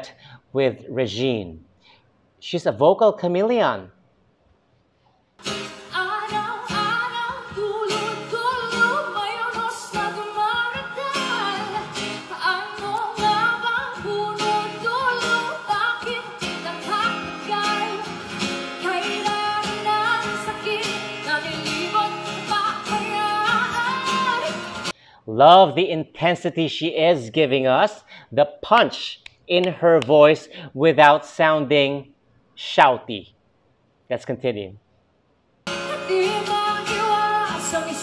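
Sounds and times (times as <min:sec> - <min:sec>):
strummed acoustic guitar: 0:05.4 - 0:24.9
woman singing: 0:05.9 - 0:24.9, 0:35.7 - 0:38.0.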